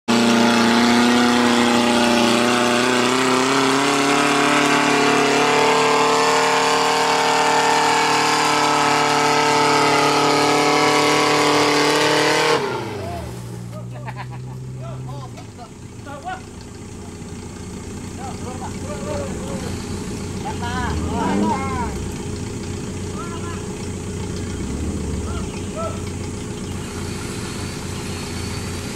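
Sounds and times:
off-road engine revving: 0:00.0 - 0:28.9
people's voices: 0:18.1 - 0:22.2, 0:23.0 - 0:23.8, 0:25.1 - 0:26.2.

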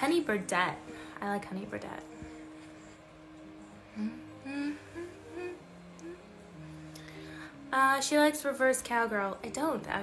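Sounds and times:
quiet background music: 0:00.0 - 0:10.0
woman humming: 0:03.9 - 0:06.5.

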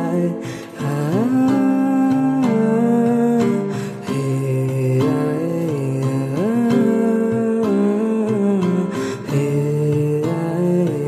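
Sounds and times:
acoustic guitar: 0:00.0 - 0:11.0
man singing wordless melody: 0:00.0 - 0:11.0.

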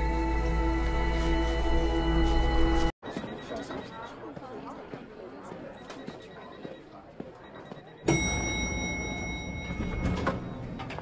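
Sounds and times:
elevator chime: 0:07.8 - 0:11.0.

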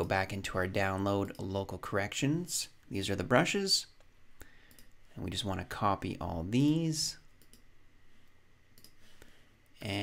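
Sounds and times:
faint mouse clicks: 0:08.8 - 0:09.0.

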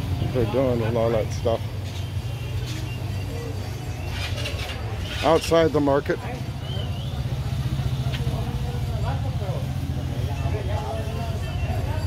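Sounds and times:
faint voices: 0:00.0 - 0:12.0
vehicle engine idling: 0:00.0 - 0:12.0.

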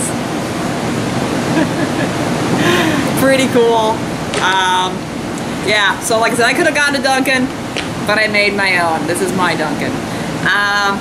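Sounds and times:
steady rushing noise: 0:00.0 - 0:11.0
person laughing: 0:01.4 - 0:03.2.

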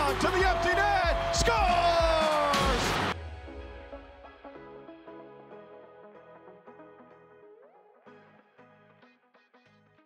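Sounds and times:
arena crowd cheering: 0:00.0 - 0:03.4
music playing: 0:00.0 - 0:10.0.

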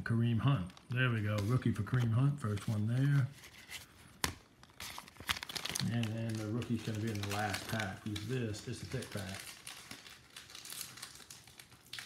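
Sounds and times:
cards tapping: 0:01.2 - 0:08.4.

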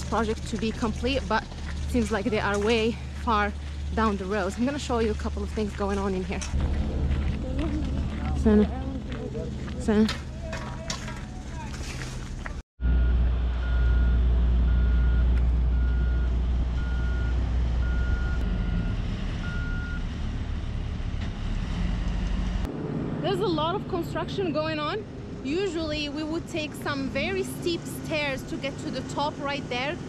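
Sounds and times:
diesel machinery rumbling: 0:00.0 - 0:30.0
reversing alarm beeping: 0:12.8 - 0:20.0.

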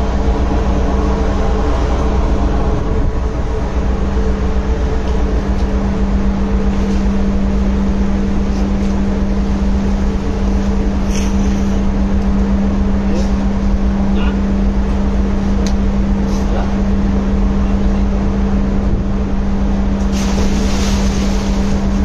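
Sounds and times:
ship engine droning: 0:00.0 - 0:22.0.

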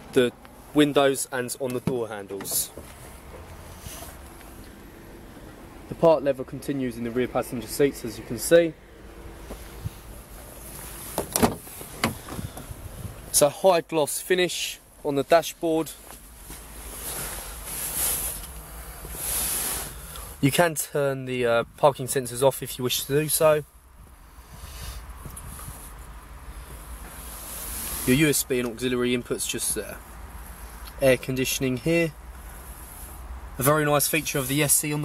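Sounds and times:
microphone handling noise: 0:09.4 - 0:13.3
wind rumble on microphone: 0:09.7 - 0:10.2, 0:11.9 - 0:13.3, 0:23.9 - 0:26.0.

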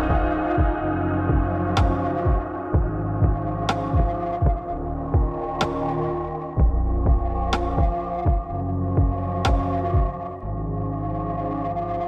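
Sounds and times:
held synth chord: 0:00.0 - 0:06.6
low thumping pulse: 0:00.0 - 0:10.5.

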